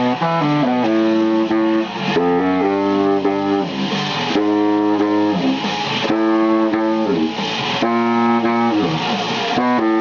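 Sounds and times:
baritone saxophone playing: 0:00.0 - 0:09.0, 0:09.6 - 0:10.0
rock music with electric guitars: 0:00.0 - 0:10.0.

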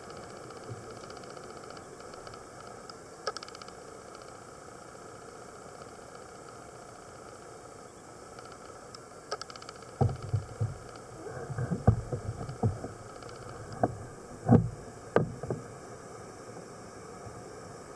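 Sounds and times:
steady low hiss: 0:00.0 - 0:17.9
plastic diving mask rattling: 0:10.0 - 0:15.6.

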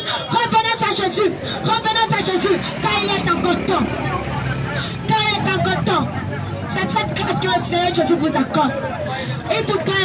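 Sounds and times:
woman preaching over loudspeaker: 0:00.0 - 0:04.0, 0:04.8 - 0:10.0
babble of market crowd: 0:00.0 - 0:10.0.

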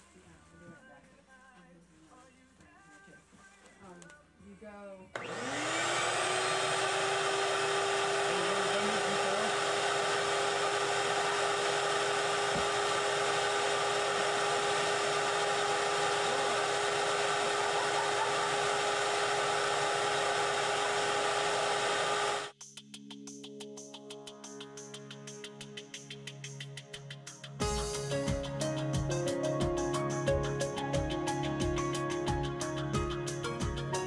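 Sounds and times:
vacuum cleaner whining: 0:05.2 - 0:22.6.

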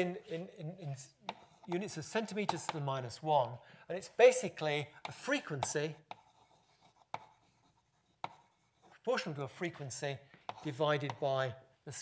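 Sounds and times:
chalk scratching on blackboard: 0:00.2 - 0:02.8, 0:05.1 - 0:11.2
chalk taps: 0:01.1 - 0:03.0, 0:05.0 - 0:09.1, 0:09.7 - 0:11.4.

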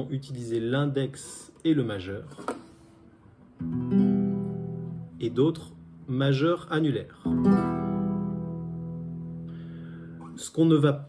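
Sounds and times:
acoustic guitar chord strummed: 0:03.6 - 0:06.2, 0:07.2 - 0:10.3.

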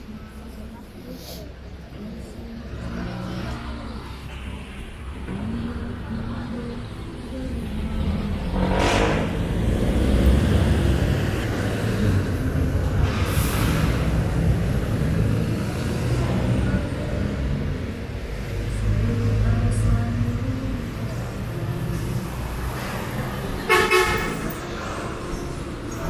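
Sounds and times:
bus and vehicles passing: 0:00.0 - 0:26.0.

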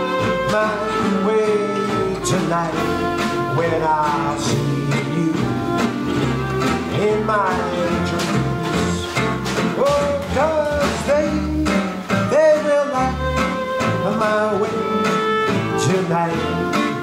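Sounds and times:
double bass: 0:00.0 - 0:17.0
light drums: 0:00.0 - 0:17.0
strummed acoustic guitars: 0:00.0 - 0:17.0
violin melody: 0:00.0 - 0:17.0.

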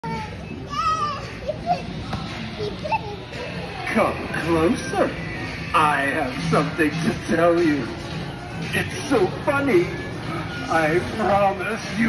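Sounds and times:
young child calling: 0:00.0 - 0:01.9, 0:02.6 - 0:03.6.

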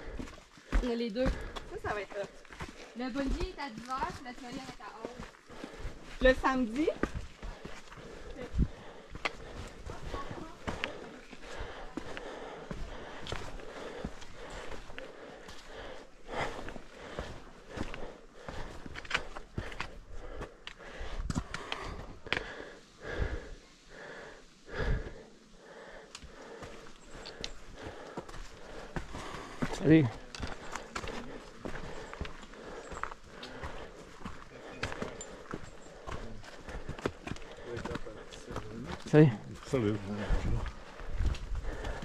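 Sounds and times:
footsteps on rocky trail: 0:00.0 - 0:42.0
breathing close to microphone: 0:05.0 - 0:06.3, 0:07.0 - 0:38.8, 0:40.1 - 0:42.0.

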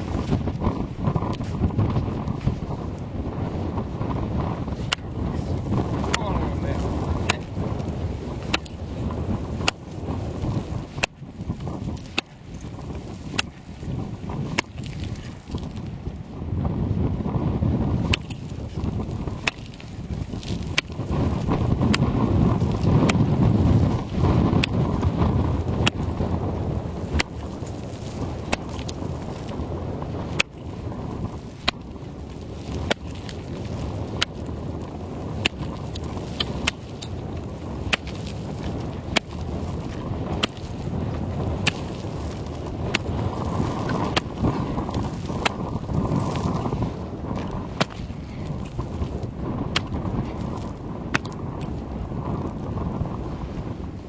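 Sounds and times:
wind buffeting microphone: 0:00.0 - 0:54.0
axe chopping ice: 0:06.1 - 0:09.9, 0:13.3 - 0:13.7, 0:14.4 - 0:15.6, 0:18.0 - 0:26.2, 0:27.1 - 0:29.1, 0:30.4 - 0:30.7, 0:31.6 - 0:46.8, 0:47.4 - 0:48.8, 0:51.1 - 0:51.4.

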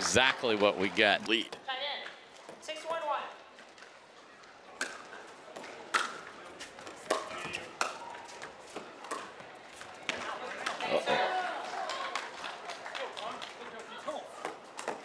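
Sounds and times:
paddles hitting pickleball: 0:04.8 - 0:10.8.

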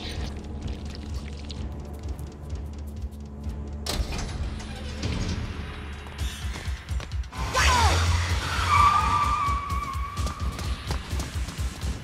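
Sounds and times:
car tyres squealing: 0:08.0 - 0:10.6.

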